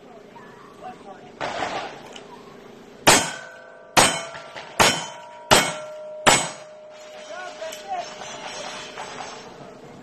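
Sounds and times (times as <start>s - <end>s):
steel target ringing: 3.0s - 8.5s.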